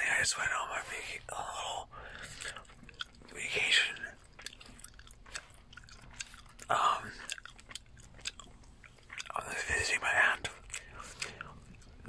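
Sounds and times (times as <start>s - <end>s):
breathy whisper: 0.0s - 2.7s, 3.3s - 4.2s, 6.7s - 7.3s, 9.3s - 12.0s
gum chewing: 1.2s - 12.0s.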